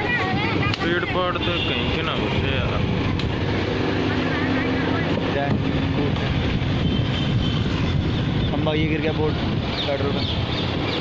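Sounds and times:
wind on microphone: 0:00.0 - 0:11.0
vehicle engine running: 0:02.3 - 0:11.0.

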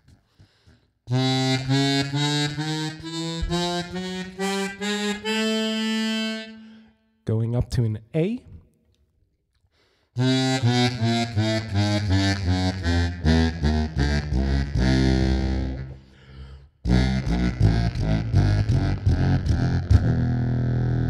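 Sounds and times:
bass harmonica playing a scale: 0:00.0 - 0:07.1, 0:10.2 - 0:21.0.

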